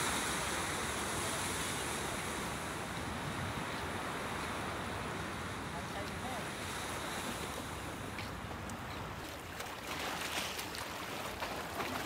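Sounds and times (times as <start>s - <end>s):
waves washing against breakwater: 0.0s - 12.0s.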